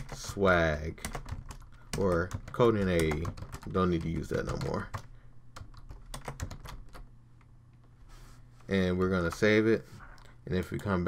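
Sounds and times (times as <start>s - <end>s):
computer keyboard typing: 0.0s - 7.1s.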